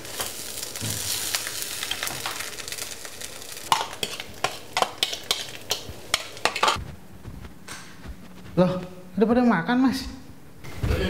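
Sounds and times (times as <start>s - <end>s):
food sizzling in a frying pan: 0.0s - 6.8s
utensil stirring in pan: 0.0s - 6.8s.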